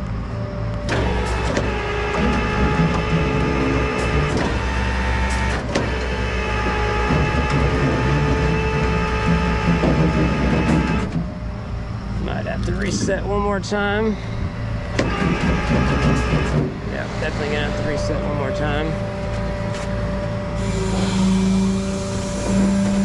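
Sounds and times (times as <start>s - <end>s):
truck engine running: 0.0s - 23.0s
winch whining: 0.0s - 23.0s.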